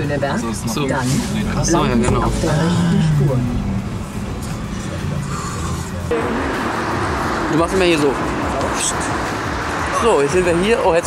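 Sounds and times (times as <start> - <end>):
road and engine rumble in car: 0.0 - 11.0
street traffic hiss: 0.9 - 11.0.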